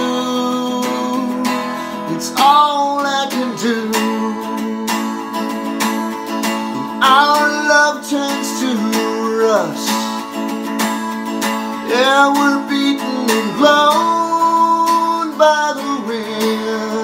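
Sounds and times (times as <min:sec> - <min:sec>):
guitar strumming chord: 0:00.0 - 0:17.0.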